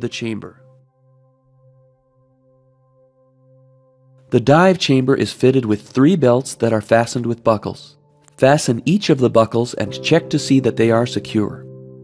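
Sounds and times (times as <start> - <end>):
soft synth chord: 0.0 - 5.5, 9.9 - 12.0.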